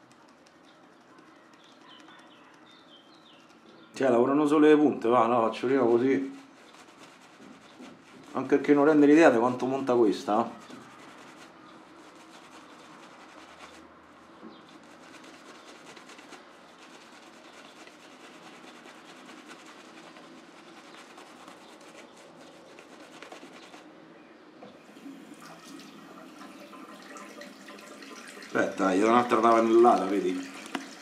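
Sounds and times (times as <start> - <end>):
shaving brush wet brushing: 0.0 - 3.6, 5.3 - 24.0, 24.9 - 31.0.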